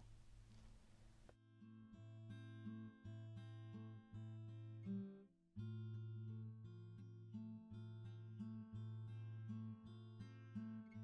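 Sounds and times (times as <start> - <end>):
quiet guitar background music: 1.4 - 11.0.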